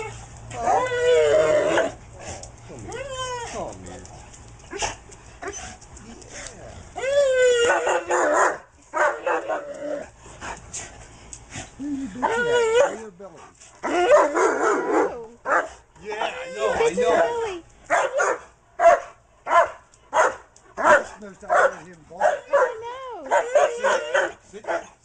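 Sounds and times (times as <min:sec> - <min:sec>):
dog whining and yelping: 0:00.0 - 0:03.8, 0:04.7 - 0:10.1, 0:12.2 - 0:13.0, 0:22.5 - 0:24.4.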